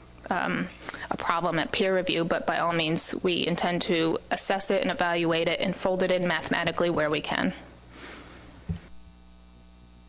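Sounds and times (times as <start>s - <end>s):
electrical mains hum: 0.0s - 10.0s
soft thump: 8.7s - 8.9s.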